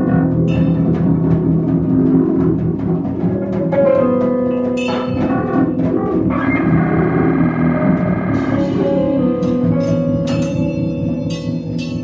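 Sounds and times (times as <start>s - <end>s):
drums: 0.0s - 12.0s
keyboard electronics: 4.9s - 11.8s
distorted electric guitar chord: 6.3s - 11.7s.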